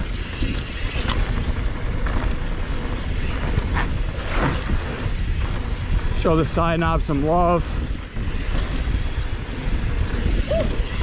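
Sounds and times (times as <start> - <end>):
bike clicks and knocks: 0.0 - 6.2, 7.3 - 11.0
tyre noise on dirt: 0.0 - 11.0
wind buffeting microphone: 0.0 - 11.0.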